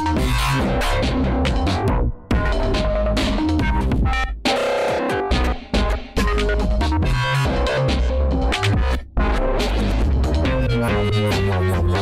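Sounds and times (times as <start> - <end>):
dubstep music with heavy bass: 0.0 - 12.0.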